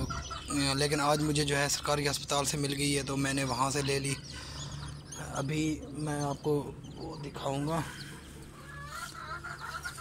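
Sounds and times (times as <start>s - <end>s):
hen clucking softly: 0.0s - 1.6s, 7.8s - 10.0s
chicks peeping: 0.0s - 10.0s.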